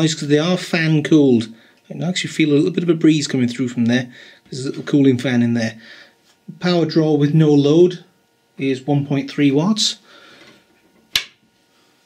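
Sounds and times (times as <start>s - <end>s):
cooling fan hum: 0.0s - 12.0s.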